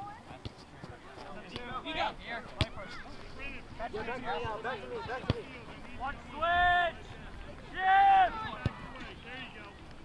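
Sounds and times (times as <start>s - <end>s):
soccer ball kicked on grass: 2.5s - 3.0s
distant shouting voices: 6.0s - 9.3s.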